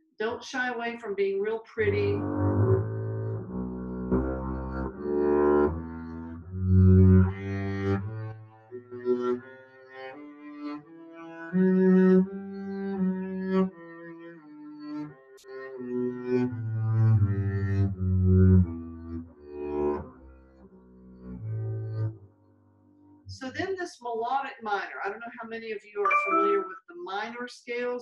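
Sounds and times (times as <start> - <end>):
bowed double bass notes: 1.8 - 23.7.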